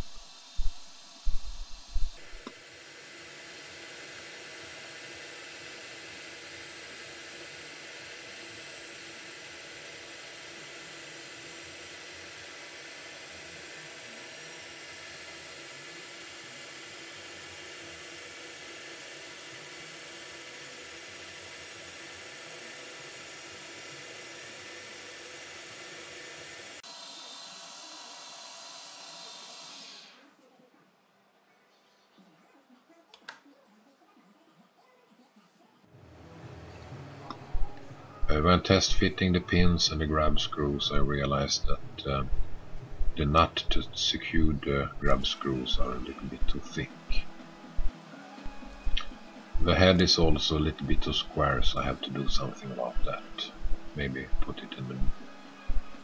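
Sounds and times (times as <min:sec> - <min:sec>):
lathe running: 0:00.0 - 0:24.5, 0:25.3 - 0:30.2.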